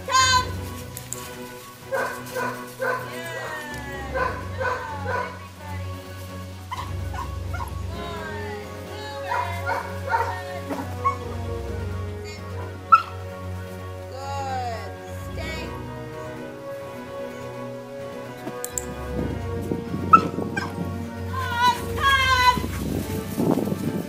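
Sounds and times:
background music: 0:00.0 - 0:24.0
dog barking: 0:01.9 - 0:03.1, 0:04.2 - 0:05.4, 0:09.3 - 0:10.4.

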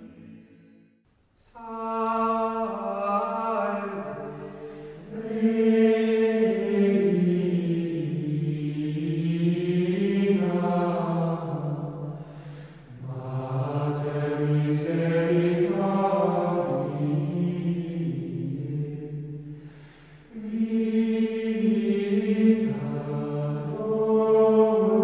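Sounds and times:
men singing plainchant: 0:20.3 - 0:25.0.

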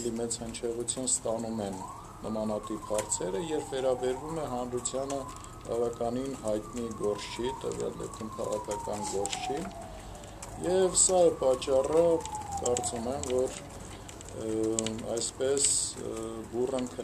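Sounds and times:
man speaking: 0:00.0 - 0:09.8, 0:10.6 - 0:13.6, 0:14.3 - 0:17.0.

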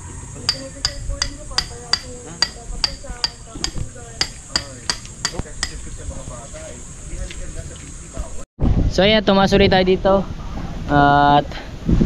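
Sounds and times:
hammer striking steel: 0:00.5 - 0:05.9.

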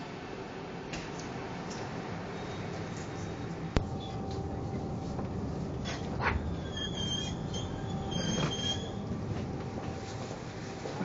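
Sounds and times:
metro train rumble: 0:00.0 - 0:11.0
brief high squeals: 0:06.5 - 0:09.0.

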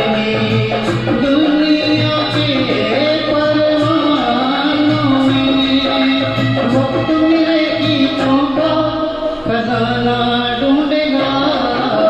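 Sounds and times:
karaoke backing track: 0:00.0 - 0:12.0
man singing into microphone: 0:00.0 - 0:12.0.

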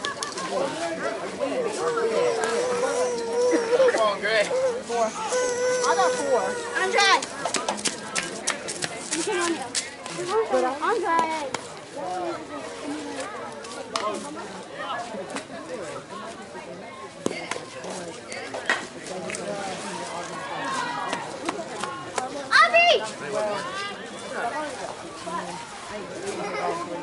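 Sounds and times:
people talking and calling out: 0:00.0 - 0:27.0.

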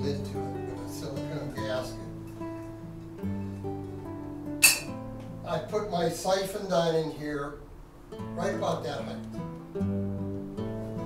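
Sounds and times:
acoustic guitar music: 0:00.0 - 0:11.0.

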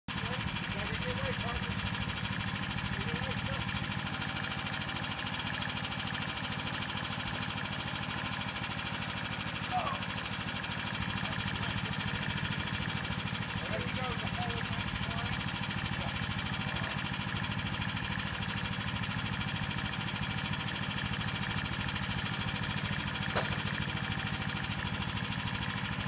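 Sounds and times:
small engine running: 0:00.1 - 0:26.0.

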